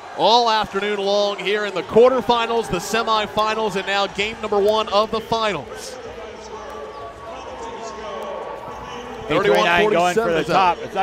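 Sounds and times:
crowd noise: 0.0s - 11.0s
indistinct voices: 0.3s - 11.0s.

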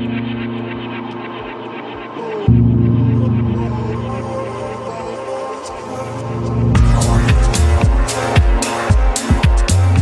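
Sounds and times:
high ticking percussion: 0.0s - 10.0s
deep bass drone: 2.5s - 4.8s, 6.5s - 8.1s.

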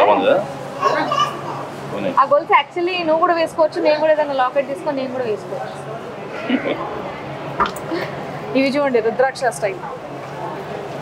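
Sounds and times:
people talking: 0.0s - 1.5s, 2.2s - 7.0s, 7.9s - 10.6s.

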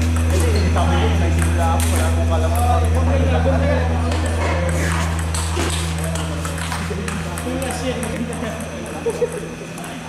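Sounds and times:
table tennis ball clicks: 4.7s - 9.0s.

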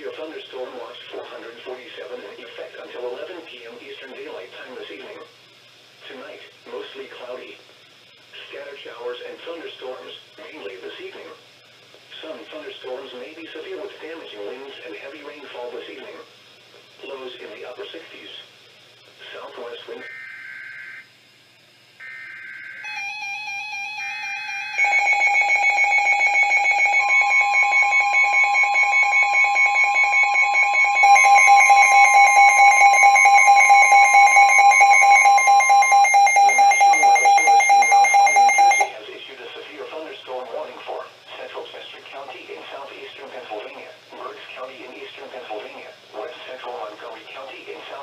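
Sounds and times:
radio voice speaking: 19.2s - 20.1s, 38.8s - 48.0s
steady warning tone: 21.9s - 39.0s
rapidly pulsing electronic beeping: 22.1s - 38.9s.

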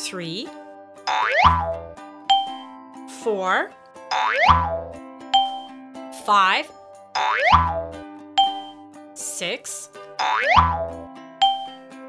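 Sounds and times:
children's music: 0.0s - 12.0s
rising boing glide: 1.1s - 1.8s, 4.1s - 4.9s, 7.2s - 8.0s, 10.2s - 11.0s
bright ding: 2.3s - 2.7s, 5.4s - 5.7s, 8.4s - 8.8s, 11.4s - 11.8s.

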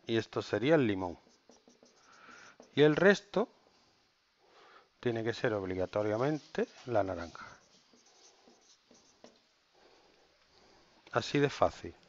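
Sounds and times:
marker writing on whiteboard: 0.8s - 3.3s, 5.8s - 10.0s.

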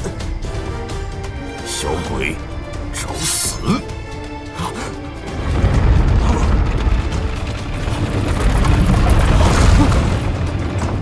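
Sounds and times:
film score music: 0.0s - 11.0s
low rumbling boom: 5.2s - 11.0s.

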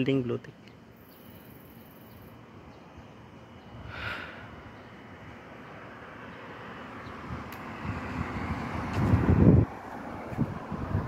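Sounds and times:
street traffic: 0.0s - 11.0s
vehicle passing: 3.6s - 11.0s
wind buffeting microphone: 6.9s - 11.0s.

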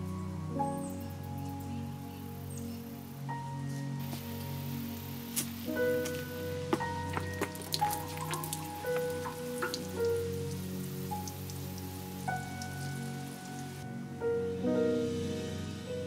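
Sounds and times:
slow background music: 0.0s - 16.0s
water splashing and dripping on plants: 4.0s - 13.9s.

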